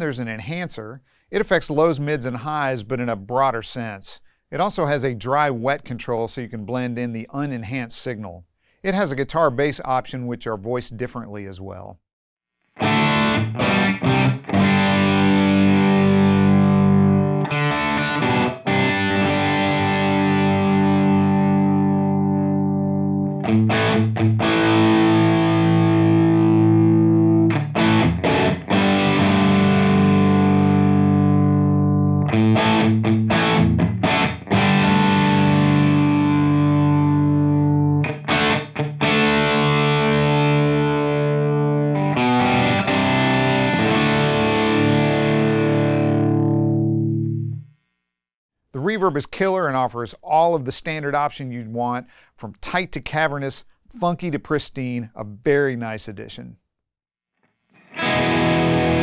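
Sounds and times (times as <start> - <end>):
distorted electric guitar chords: 12.8 - 47.9, 57.8 - 59.0.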